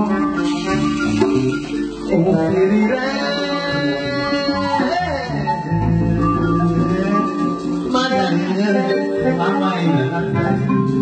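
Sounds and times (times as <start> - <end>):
guitar notes: 0.0 - 11.0
live band music: 0.0 - 11.0.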